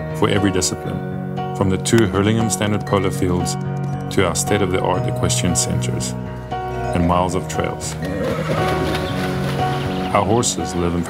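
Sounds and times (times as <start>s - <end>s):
music with sustained notes: 0.0s - 11.0s
horse: 7.9s - 10.1s.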